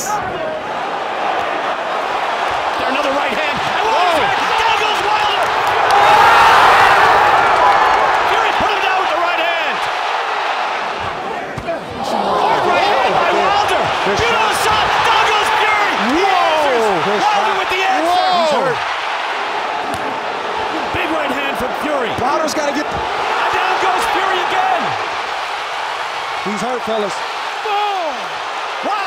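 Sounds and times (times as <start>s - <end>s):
arena crowd roaring and yelling: 0.0s - 29.0s.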